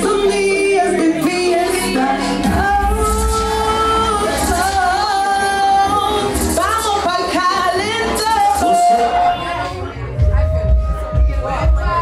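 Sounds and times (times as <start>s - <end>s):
music with deep bass: 0.0s - 12.0s
woman singing into microphone: 0.0s - 12.0s.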